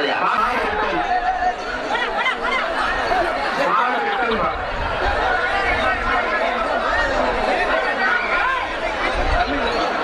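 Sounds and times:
crowd shouting and chattering: 0.0s - 10.0s
drawn-out shout: 0.6s - 9.5s.

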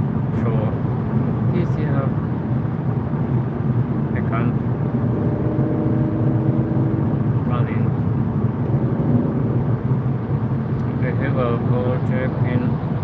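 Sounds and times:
car road and engine noise: 0.0s - 13.0s.

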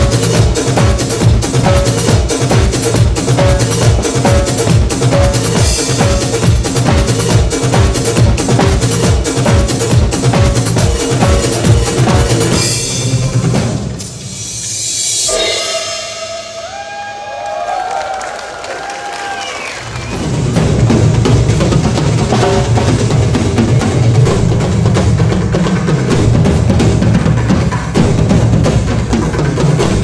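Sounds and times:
drum kit: 0.0s - 18.1s, 19.0s - 30.0s
backing music: 0.0s - 18.4s, 19.6s - 30.0s
gliding pitched tones: 15.0s - 17.2s.

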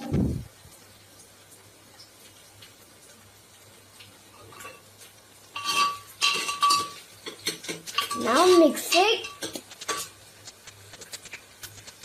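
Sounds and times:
metal utensil scraping a pot: 4.3s - 4.9s, 5.5s - 12.0s.

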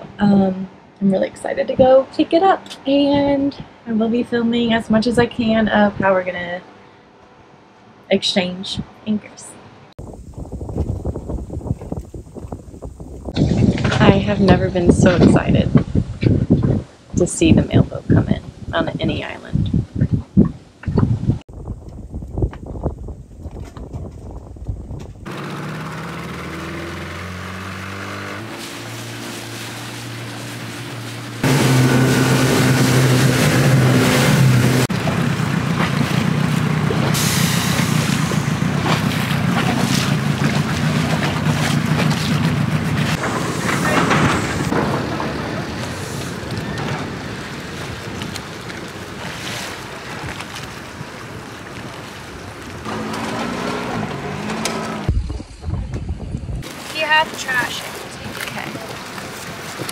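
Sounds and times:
outboard motor running: 25.3s - 43.2s
machinery noise: 25.3s - 47.8s.

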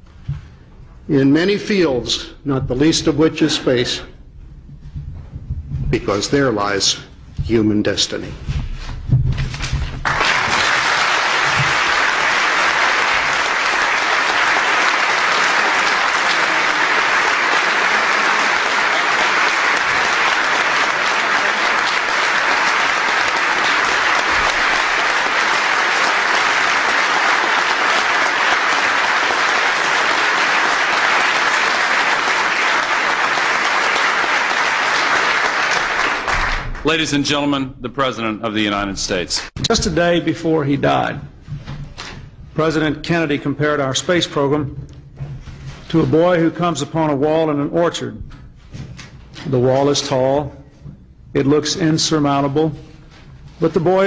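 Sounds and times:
audience applauding: 10.0s - 37.1s.

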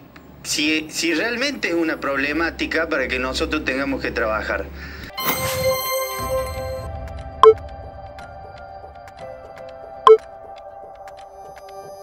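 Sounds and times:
sustained electronic chords: 1.6s - 5.0s.

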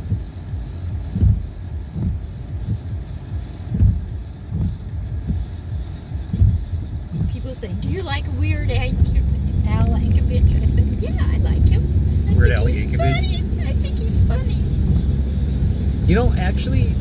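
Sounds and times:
car cabin rumble: 0.0s - 17.0s
voices: 7.1s - 15.0s, 16.0s - 17.0s.

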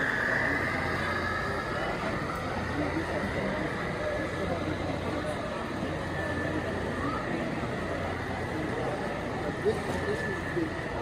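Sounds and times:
crowd chatter: 0.0s - 11.0s
model train rolling on track: 0.0s - 11.0s.

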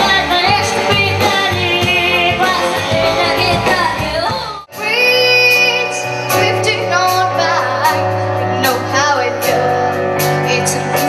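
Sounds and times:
child singing pop: 0.0s - 11.0s
live band playing: 0.0s - 11.0s.

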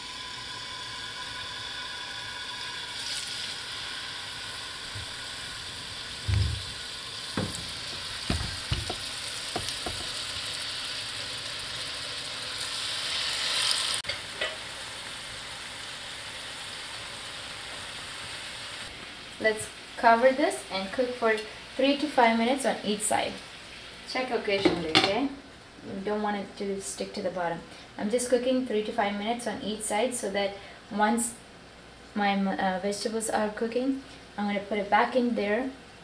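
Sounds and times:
chicken sizzling in oil: 0.0s - 24.3s
pieces knocking into pan: 6.2s - 10.3s.

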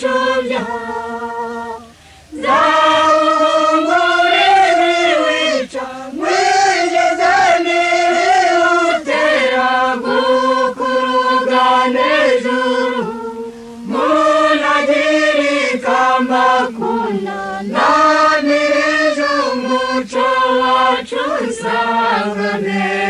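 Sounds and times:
choir singing: 0.0s - 23.0s.

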